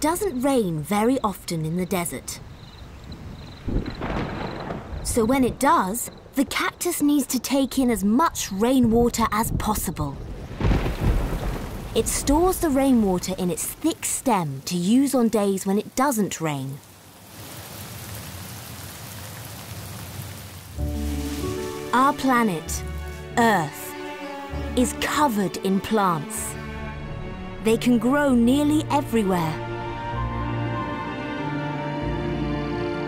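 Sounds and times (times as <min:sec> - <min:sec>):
insects chirping: 0:00.0 - 0:15.2, 0:16.8 - 0:26.9
steady rain falling: 0:00.0 - 0:27.1
distant thunder rumbling: 0:00.1 - 0:15.4, 0:20.8 - 0:26.9
music with held tones: 0:20.8 - 0:33.0.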